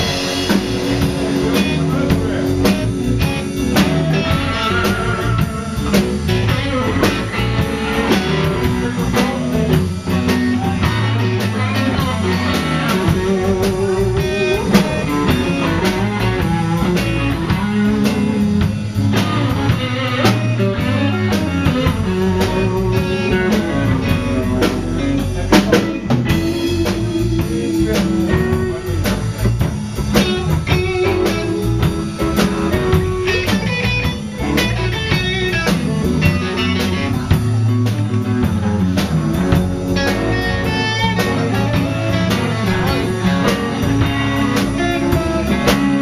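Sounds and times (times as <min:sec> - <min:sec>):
bass guitar: 0:00.0 - 0:46.0
drum kit with cymbals: 0:00.0 - 0:46.0
electric guitar: 0:00.0 - 0:46.0.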